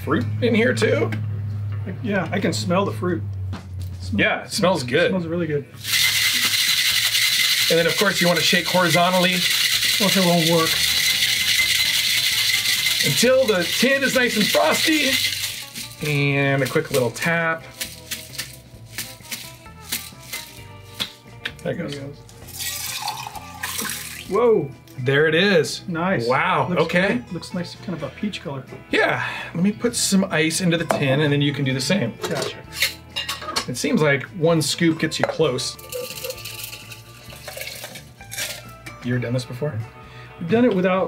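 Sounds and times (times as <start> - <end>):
ice rattling in cocktail shaker: 5.8 - 21.0, 22.4 - 24.3, 35.7 - 38.8.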